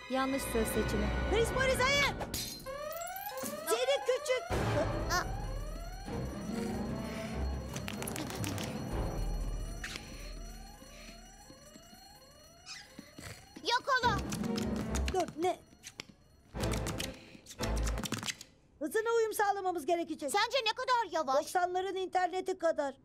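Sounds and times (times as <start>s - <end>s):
fire alarm whooping: 0.2s - 16.6s.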